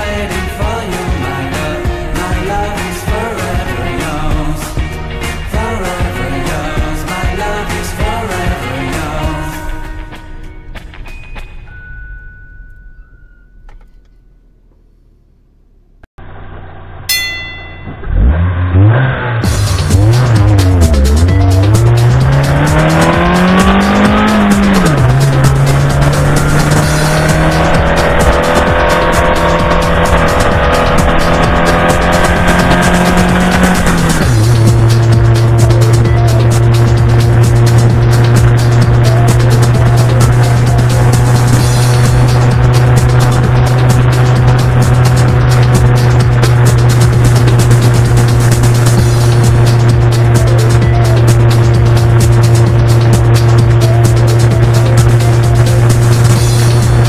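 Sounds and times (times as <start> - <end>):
car engine accelerating: 13.4 - 57.0.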